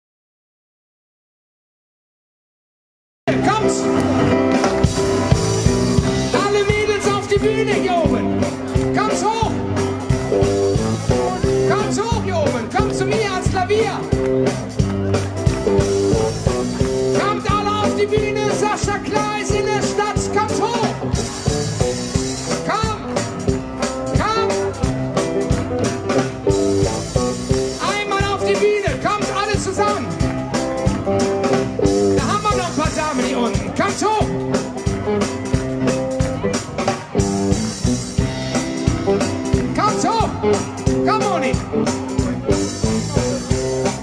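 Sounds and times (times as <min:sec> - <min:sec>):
electric guitars: 0:03.3 - 0:44.0
live band playing: 0:03.3 - 0:44.0
drum kit steady beat: 0:03.4 - 0:44.0
piano: 0:03.4 - 0:44.0.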